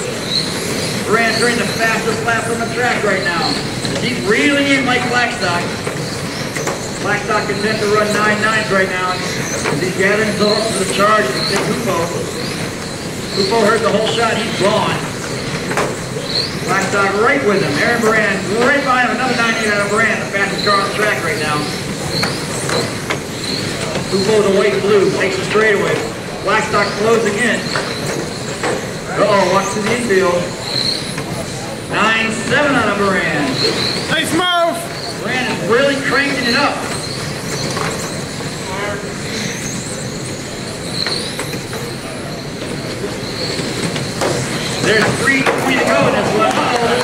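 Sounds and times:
electric rc cars whining: 0:00.0 - 0:47.0
steady rush of noise: 0:00.0 - 0:47.0.

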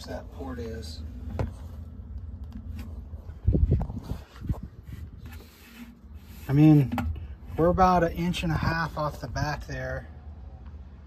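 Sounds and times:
steady low rumble: 0:00.0 - 0:05.4.

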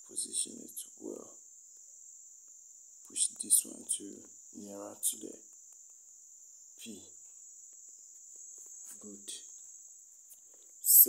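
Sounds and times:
man speaking: 0:00.0 - 0:01.4, 0:03.1 - 0:05.4, 0:06.8 - 0:07.1, 0:08.9 - 0:09.5
insects trilling: 0:00.0 - 0:11.0.

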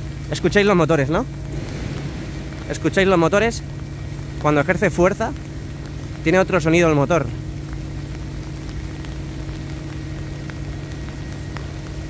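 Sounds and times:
hoisting motors humming: 0:00.0 - 0:12.0.

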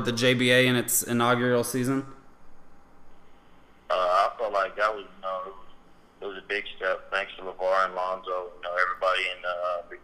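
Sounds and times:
person speaking: 0:00.0 - 0:02.2, 0:03.9 - 0:10.0
faint steady background noise: 0:00.0 - 0:10.0.

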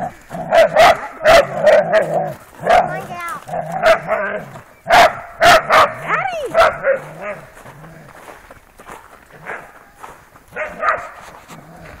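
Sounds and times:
dogs barking: 0:00.0 - 0:08.1, 0:09.3 - 0:11.9
footsteps crunching in snow: 0:00.0 - 0:12.0.

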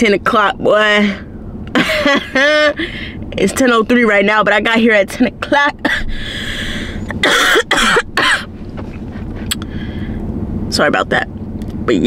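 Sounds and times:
woman coughing: 0:05.8 - 0:06.2, 0:07.1 - 0:08.6.

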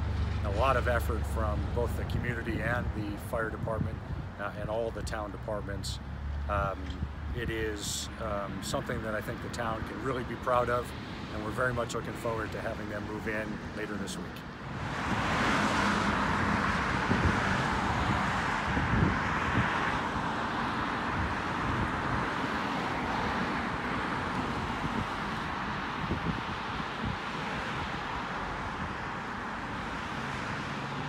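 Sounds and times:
wind rumbling on microphone: 0:00.0 - 0:09.9, 0:14.6 - 0:29.8
road traffic hiss: 0:00.0 - 0:31.0.

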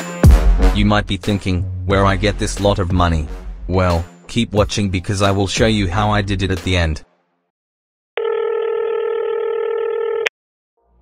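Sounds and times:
telephone ringback tone: 0:08.2 - 0:10.3.

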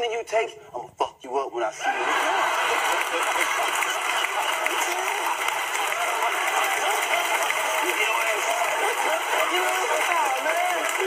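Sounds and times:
men talking over television: 0:00.0 - 0:11.0
men laughing: 0:01.8 - 0:11.0.

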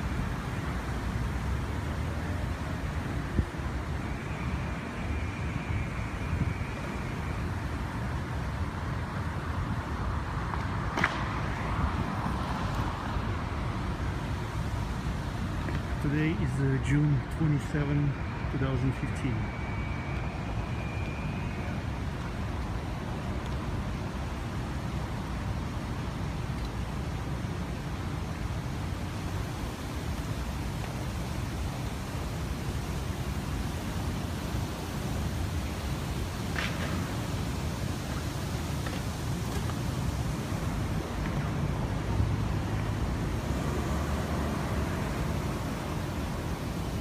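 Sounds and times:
city traffic rumble: 0:00.0 - 0:47.0.

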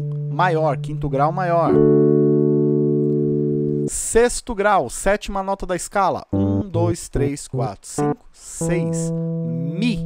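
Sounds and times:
digital keyboard chord: 0:00.0 - 0:04.1, 0:06.3 - 0:10.0.

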